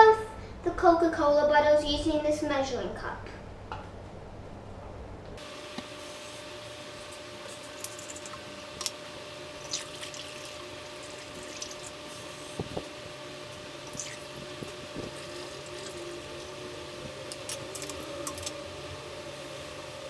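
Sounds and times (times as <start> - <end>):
water trickling through funnel: 9.6 - 12.9, 13.5 - 18.5.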